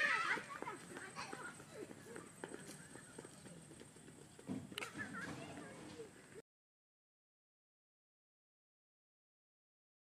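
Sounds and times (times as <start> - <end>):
child shouting: 0.0 - 1.6
children calling: 0.0 - 6.4
running footsteps on dirt path: 0.0 - 6.4.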